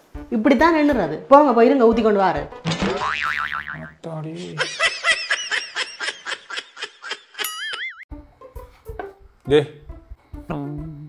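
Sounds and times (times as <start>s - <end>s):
springy boing sound effect: 2.7s - 4.0s.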